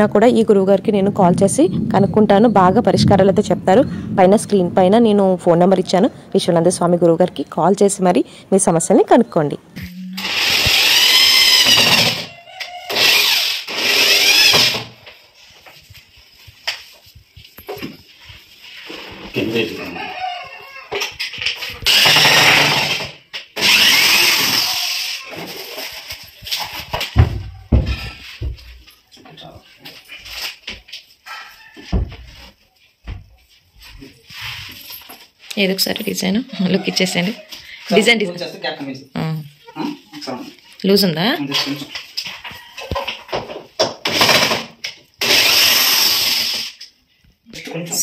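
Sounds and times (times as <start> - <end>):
electric drill running: 10.2 - 12.3, 12.9 - 14.9, 21.8 - 25.2, 45.2 - 46.8.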